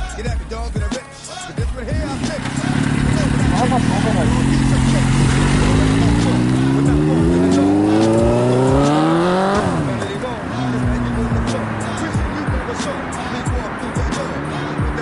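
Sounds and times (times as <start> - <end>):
motorcycle engine revving: 1.7 - 15.0.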